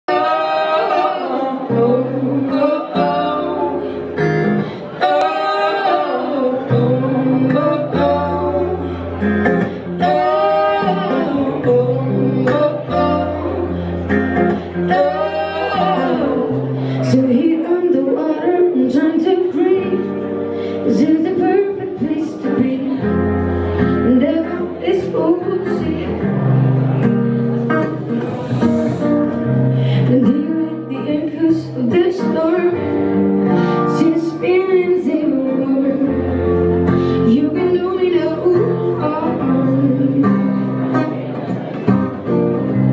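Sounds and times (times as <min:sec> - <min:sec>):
person singing: 0:00.0 - 0:26.9, 0:27.8 - 0:41.5
acoustic guitar: 0:00.0 - 0:42.9
stage piano: 0:00.1 - 0:42.9.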